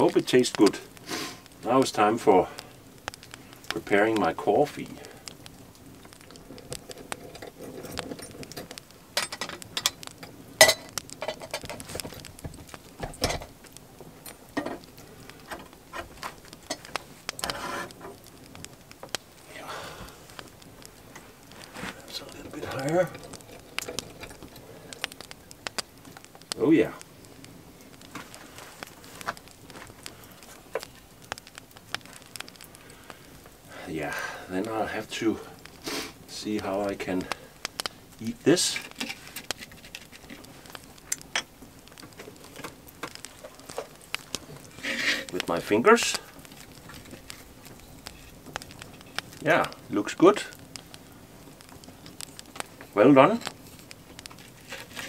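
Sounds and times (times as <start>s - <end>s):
wood fire crackling: 0.0s - 55.0s.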